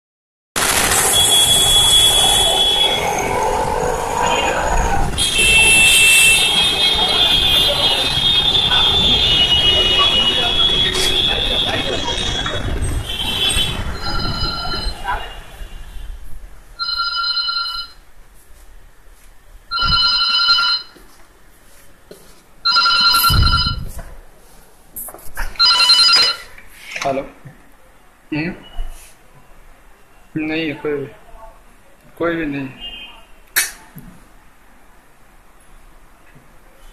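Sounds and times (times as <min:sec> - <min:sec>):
street traffic noise: 0:00.6 - 0:36.9
telephone ringing: 0:14.0 - 0:15.0, 0:16.8 - 0:18.0, 0:19.7 - 0:21.0, 0:22.6 - 0:23.9, 0:25.6 - 0:26.5
high-pitched beep: 0:14.0 - 0:15.1.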